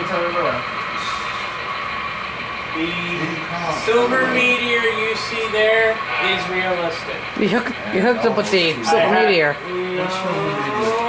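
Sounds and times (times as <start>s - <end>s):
model locomotive engine sound: 0.0s - 11.0s
background chatter: 2.7s - 11.0s
man talking: 2.8s - 11.0s.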